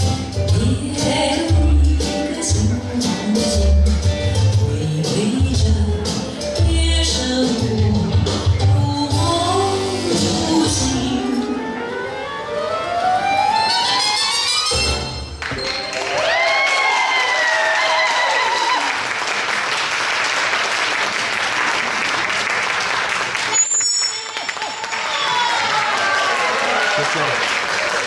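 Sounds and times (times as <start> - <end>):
audience applauding: 15.4 - 28.0.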